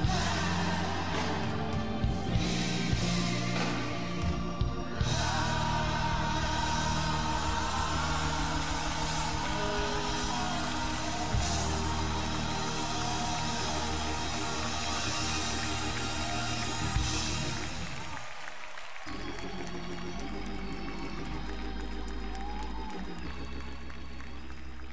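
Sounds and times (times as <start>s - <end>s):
gospel choir and band: 0.0s - 24.6s
applause: 5.2s - 24.9s.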